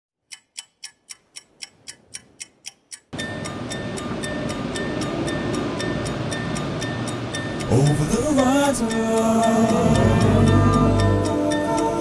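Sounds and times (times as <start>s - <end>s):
clock-like ticking: 0.2s - 12.0s.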